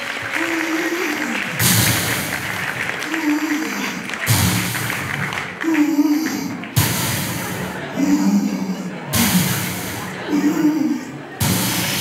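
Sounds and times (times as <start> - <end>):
hissing respirator breaths: 0.1 - 12.0.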